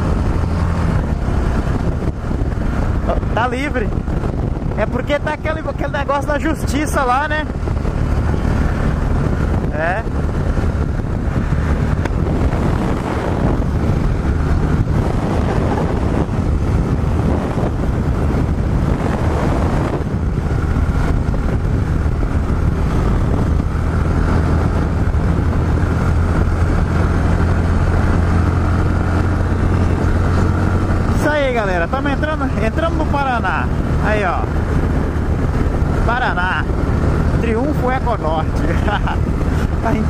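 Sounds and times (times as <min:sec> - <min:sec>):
motorcycle engine droning: 0:00.0 - 0:40.0
wind rushing over microphone: 0:00.0 - 0:40.0.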